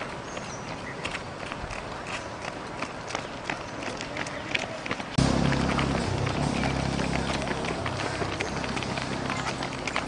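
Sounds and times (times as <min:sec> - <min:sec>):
runners' footsteps on pavement: 0:00.0 - 0:10.0.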